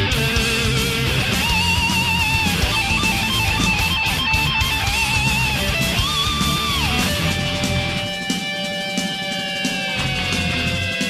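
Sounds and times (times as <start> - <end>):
lead guitar held notes: 0.0 - 11.0
power metal song: 0.0 - 11.0.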